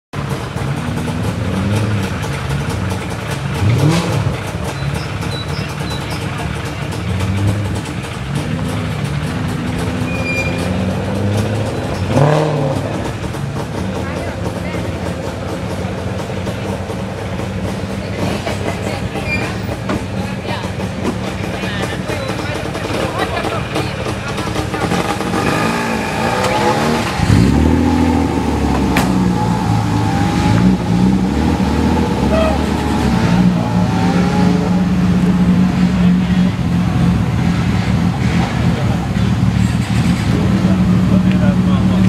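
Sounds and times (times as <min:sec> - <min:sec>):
racing car engine idling and revving: 0:00.1 - 0:42.0.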